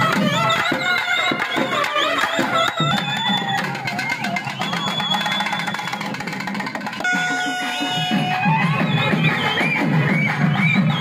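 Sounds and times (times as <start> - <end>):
wind instruments playing melody: 0.0 - 4.5, 7.0 - 9.5
steady drumming: 0.0 - 11.0.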